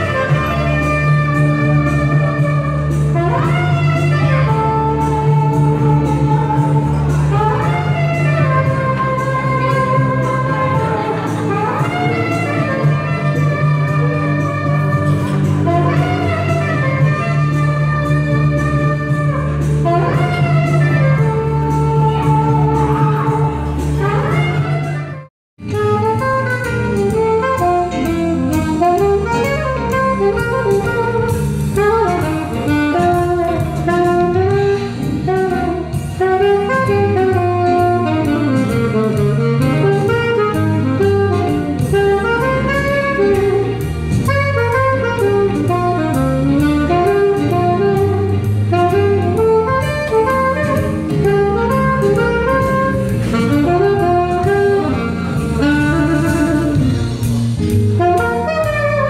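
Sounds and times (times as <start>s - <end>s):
drums and bass backing track: 0.0s - 59.0s
saxophone jazz melody: 0.0s - 59.0s.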